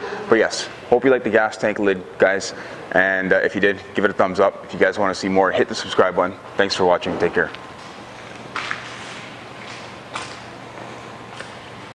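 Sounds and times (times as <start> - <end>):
shop room noise hiss: 0.0 - 11.9.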